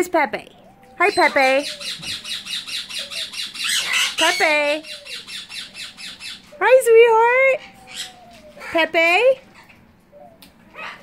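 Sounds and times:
parrot squawking: 0:00.5 - 0:09.8, 0:10.7 - 0:11.0.

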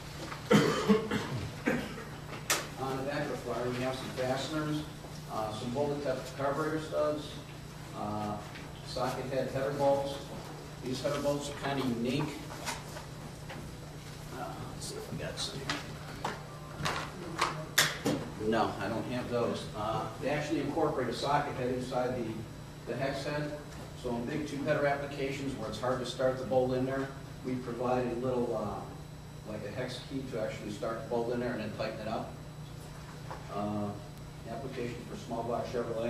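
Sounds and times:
steady low hum: 0:00.0 - 0:36.0
man coughing: 0:00.5 - 0:02.2.

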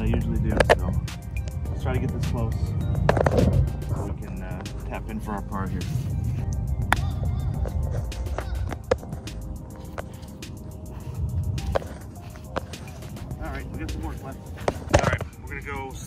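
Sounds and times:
background music: 0:00.0 - 0:16.0
putter striking golf ball: 0:02.9 - 0:03.8, 0:13.8 - 0:15.3.

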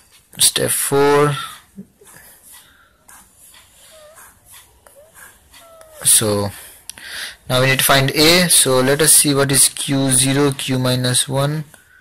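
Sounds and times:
pen scratching on paper: 0:02.0 - 0:06.4.

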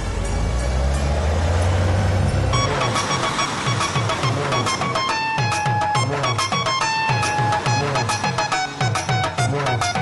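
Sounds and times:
bus engine rumbling: 0:00.0 - 0:10.0
music with plucked notes: 0:02.4 - 0:10.0.

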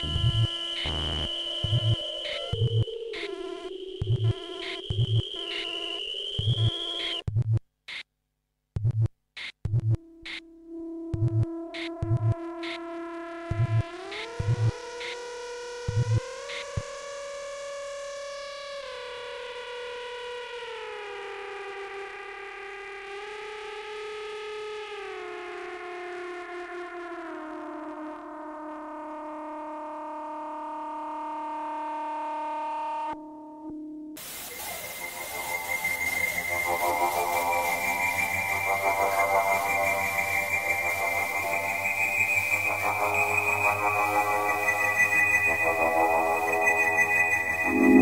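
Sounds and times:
noise hiss: 0:34.2 - 0:48.0
steady high tone: 0:34.6 - 0:48.0
distorted synth chord sliding down: 0:34.7 - 0:48.0.

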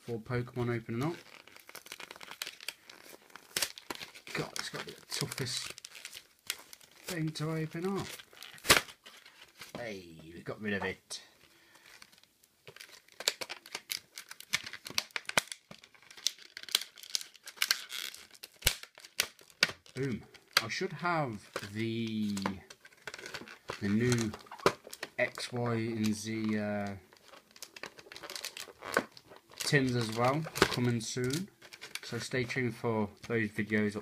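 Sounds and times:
blister pack packaging crinkling: 0:00.6 - 0:09.8, 0:11.4 - 0:34.0.

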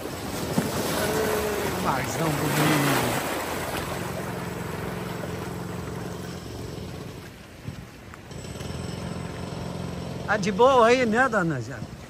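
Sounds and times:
surf washing over rocks: 0:00.0 - 0:12.0.

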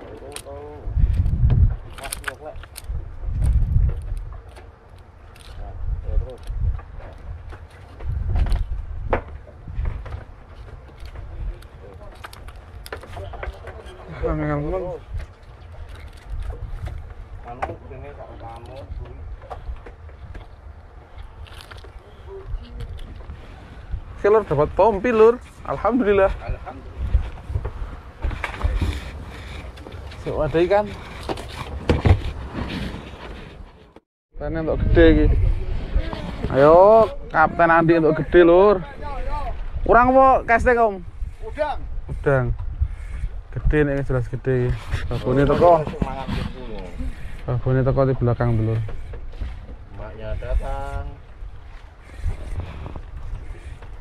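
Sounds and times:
fishing gear knocking and rustling: 0:00.0 - 0:23.9, 0:24.5 - 0:34.0
wind gusting on microphone: 0:00.0 - 0:54.0
clicks and knocks of handling: 0:01.1 - 0:05.6, 0:06.2 - 0:14.0.

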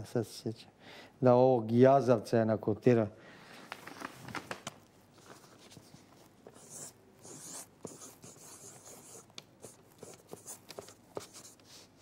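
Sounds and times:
pen scratching on paper: 0:06.5 - 0:11.7.

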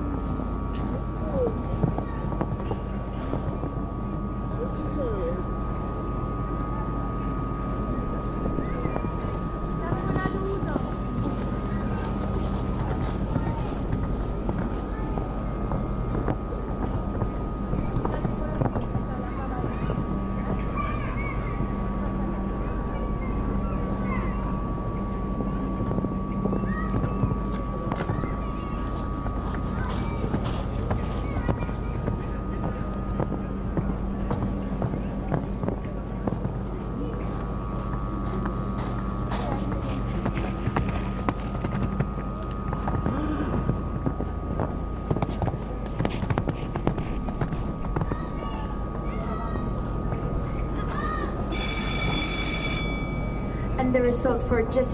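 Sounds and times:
steady high hum: 0:00.0 - 0:54.9
horse hoofbeats on sand: 0:08.7 - 0:20.6, 0:25.4 - 0:49.3.

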